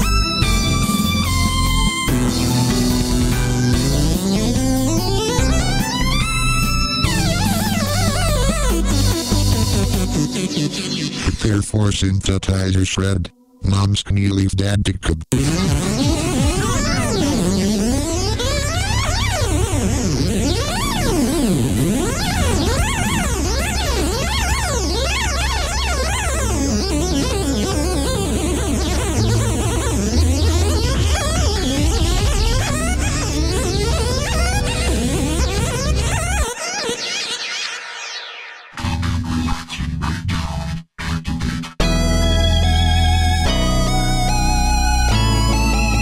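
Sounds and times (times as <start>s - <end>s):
fast synthesizer runs: 0.0s - 11.3s, 15.4s - 39.5s
heavy bass: 0.0s - 11.7s, 15.2s - 36.4s, 38.8s - 46.0s.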